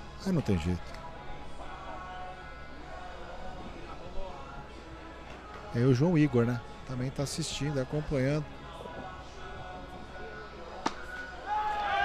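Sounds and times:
faint background music: 0:00.0 - 0:12.0.

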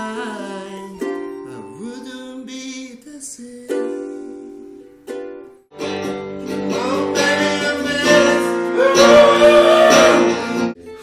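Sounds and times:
man singing: 0:00.0 - 0:04.8, 0:06.6 - 0:11.0
ukulele strumming: 0:00.0 - 0:11.0
electric guitar: 0:05.7 - 0:11.0.

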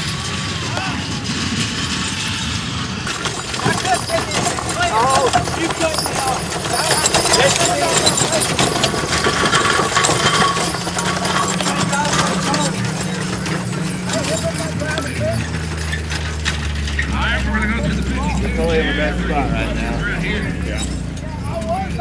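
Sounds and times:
people talking: 0:00.0 - 0:15.7, 0:16.9 - 0:22.0
wagons rattling: 0:00.0 - 0:22.0
horses' hooves on grass: 0:03.6 - 0:20.4.

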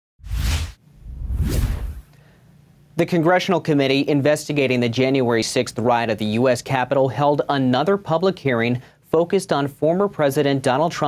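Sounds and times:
whoosh sound effects: 0:00.2 - 0:02.1.

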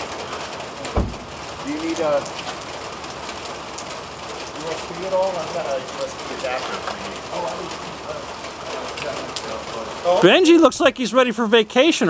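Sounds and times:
light rain on wet pavement: 0:00.0 - 0:12.0.

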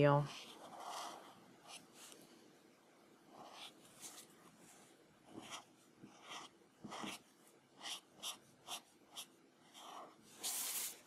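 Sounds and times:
marker scratching on paper: 0:00.2 - 0:02.2, 0:03.3 - 0:04.5, 0:05.3 - 0:11.0.

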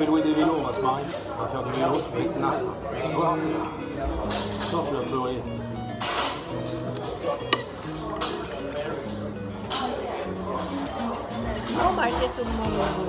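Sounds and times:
background music with low notes: 0:03.2 - 0:13.0
fork clinking and scraping on plate: 0:06.0 - 0:13.0.

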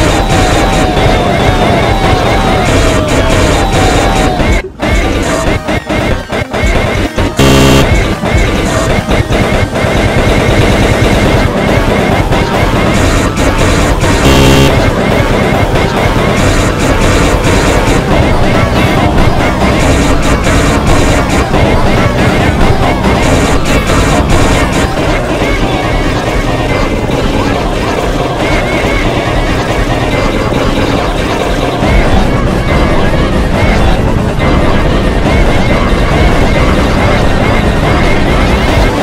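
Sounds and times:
jumble of remix music: 0:00.0 - 0:39.0
sound effects: 0:00.0 - 0:39.0.

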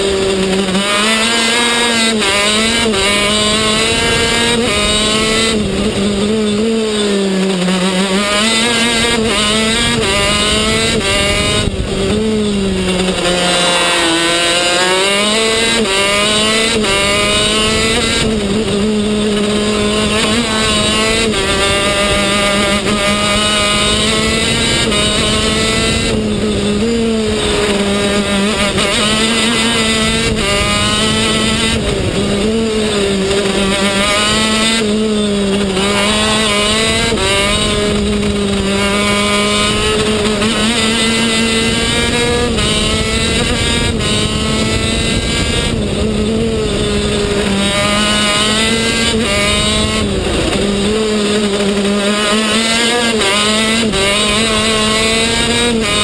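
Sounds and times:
kart engine revving: 0:00.0 - 0:56.0.

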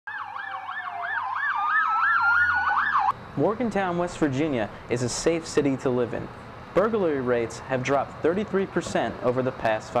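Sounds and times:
ambulance siren yelp: 0:00.1 - 0:03.2
steady rising siren tone: 0:00.1 - 0:03.2.

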